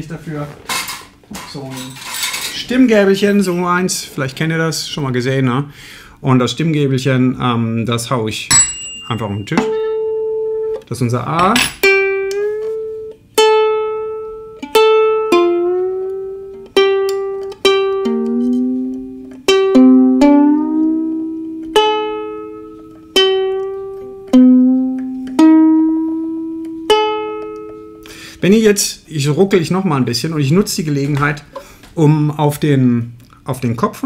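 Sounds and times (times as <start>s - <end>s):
ukulele strings plucked: 8.5s - 28.0s.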